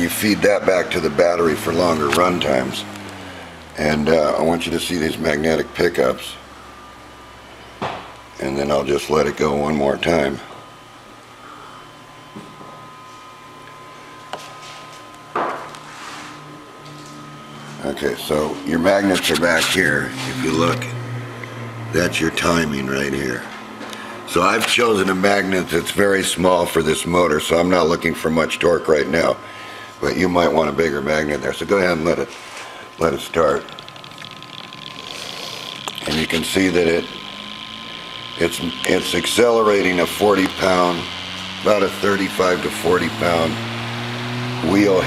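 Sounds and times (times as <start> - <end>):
motor whine and hum: 0.0 - 45.0.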